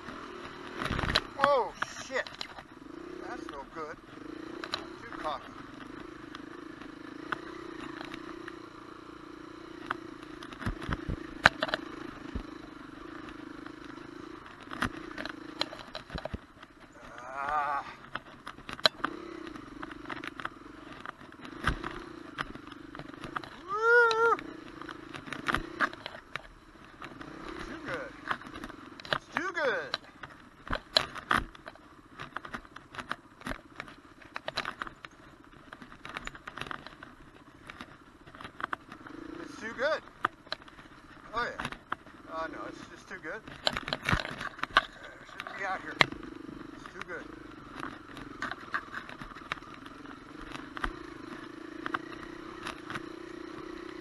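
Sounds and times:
dirt bike engine running: 0:00.0 - 0:54.0
bike knocking and clattering: 0:09.8 - 0:54.0.

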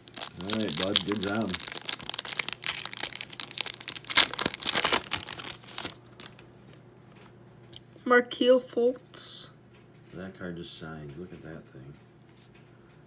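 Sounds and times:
foil wrapper tearing and crinkling: 0:00.0 - 0:06.4.

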